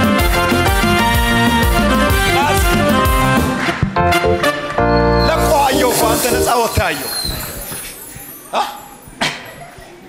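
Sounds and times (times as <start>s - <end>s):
music: 0.0s - 7.1s
voice: 5.3s - 7.1s.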